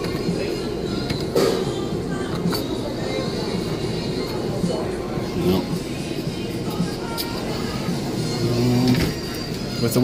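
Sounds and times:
arcade background music: 0.0 - 10.0.

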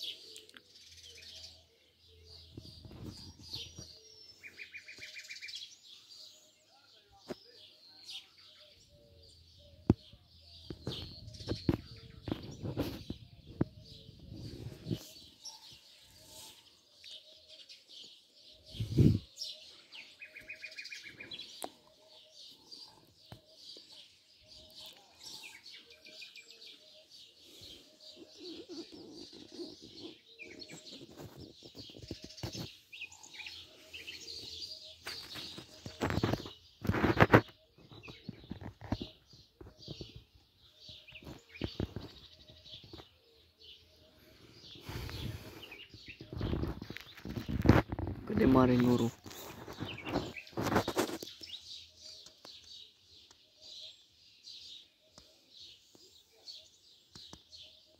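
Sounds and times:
birds chirping and calling: 0.0 - 57.9
thumps on microphone: 9.9 - 14.0.

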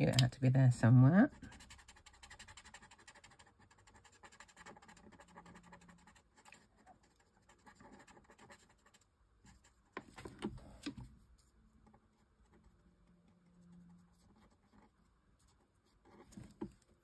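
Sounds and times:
marker scratching on paper: 1.3 - 10.1, 13.4 - 16.6.

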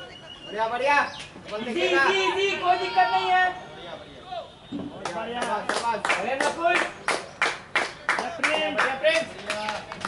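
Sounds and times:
men calling out: 1.5 - 4.6
sharp hand claps: 4.9 - 10.0.

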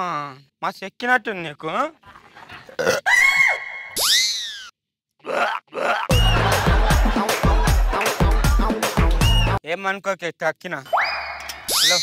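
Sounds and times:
falling whistle: 3.2 - 4.7, 9.2 - 9.6, 10.9 - 12.0.

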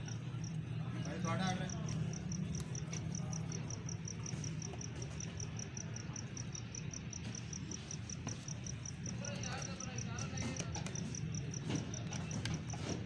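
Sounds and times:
cricket chirping: 0.0 - 12.7.

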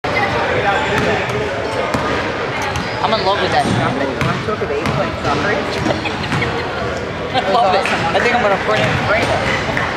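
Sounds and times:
chatter of voices: 0.0 - 9.9.

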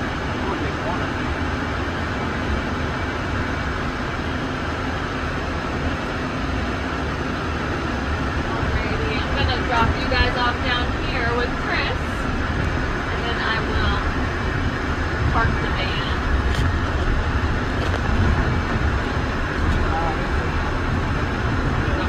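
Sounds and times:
van engine and road rumble: 0.0 - 22.0.

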